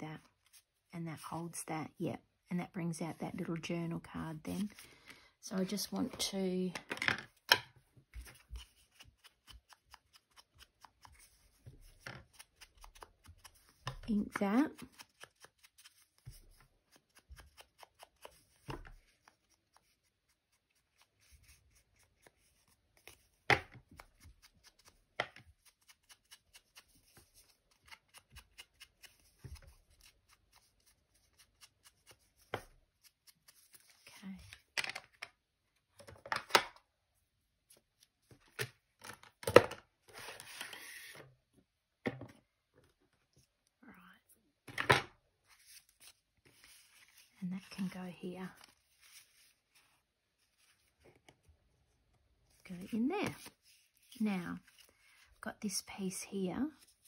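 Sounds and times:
card and paper rustling: 37.7 - 41.2, 44.7 - 51.5, 52.5 - 55.4.

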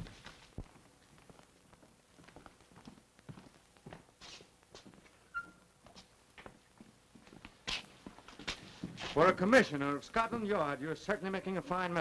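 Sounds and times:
footsteps on hard surface: 0.0 - 5.2, 5.8 - 9.5.

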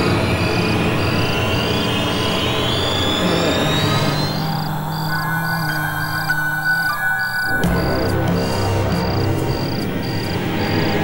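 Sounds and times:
suspense background score: 0.0 - 11.0.

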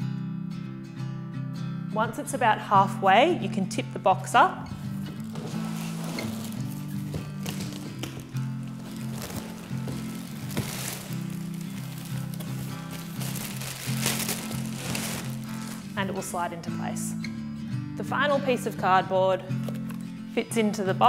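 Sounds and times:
background music with low chords: 0.0 - 21.0
plastic rustles: 4.8 - 16.2.

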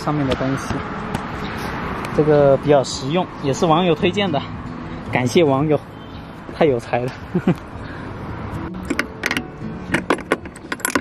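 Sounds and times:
metal step hook clicking: 8.8 - 11.0.

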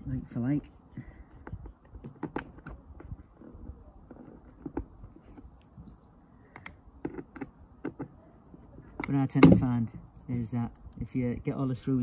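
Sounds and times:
bird chirp: 5.0 - 6.8, 9.6 - 11.4.

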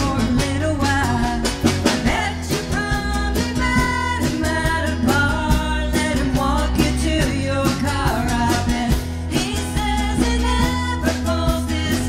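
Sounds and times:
country-rock band playing: 0.0 - 12.0.

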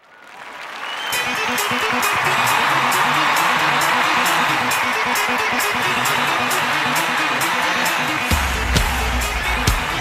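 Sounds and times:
audience applause and cheering: 0.0 - 10.0
music with bass and beat: 1.4 - 10.0.

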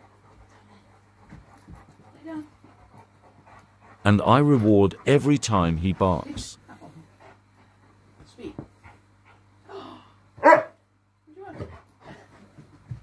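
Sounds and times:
dog barking: 10.4 - 10.8.

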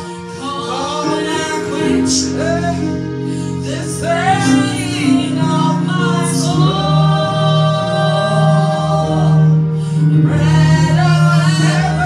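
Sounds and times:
woman singing gospel song: 3.6 - 9.6, 10.3 - 12.0.

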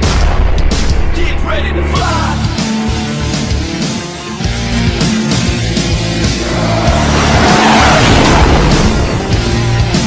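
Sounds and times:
heavy rock music: 0.0 - 10.0
rush of noise: 6.3 - 9.8.

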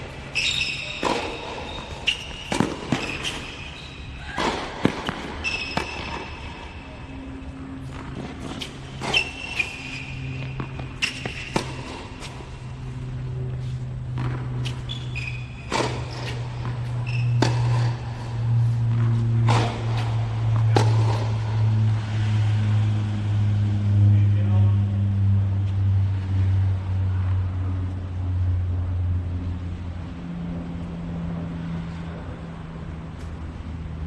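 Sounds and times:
low mechanical hum: 0.0 - 34.0
tennis ball hit by racket: 0.9 - 3.6, 4.2 - 6.8, 7.8 - 22.9.

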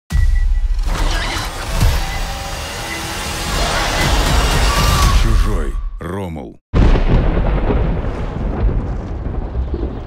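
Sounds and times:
dramatic film score: 0.1 - 10.0.

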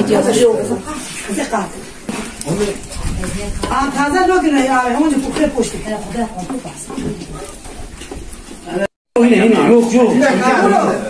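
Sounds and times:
people talking: 8.7 - 11.0.

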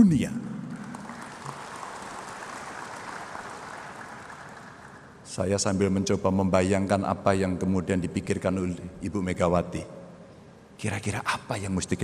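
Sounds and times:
audience applause: 0.6 - 5.2.

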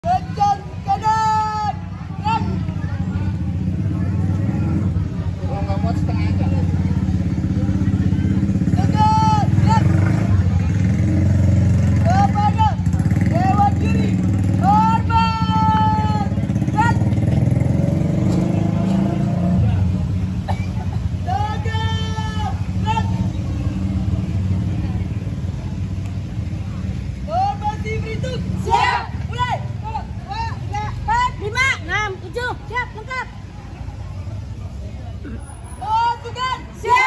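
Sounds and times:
vehicle engine rumbling: 0.0 - 37.0
raised voices calling out: 27.3 - 33.4, 35.2 - 37.0.

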